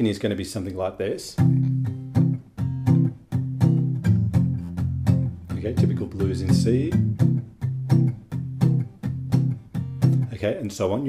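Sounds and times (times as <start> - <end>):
acoustic guitar strummed blues rhythm: 1.3 - 10.4.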